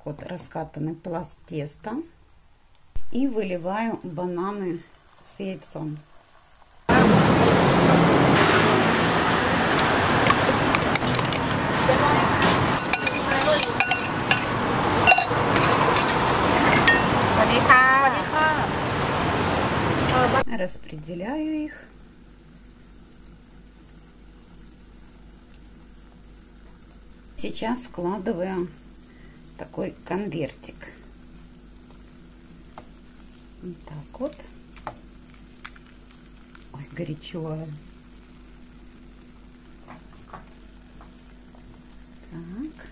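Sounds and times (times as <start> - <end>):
food sizzling on griddle: 2.6 - 20.4, 21.1 - 42.9
metal spatula scraping pan: 12.3 - 17.2.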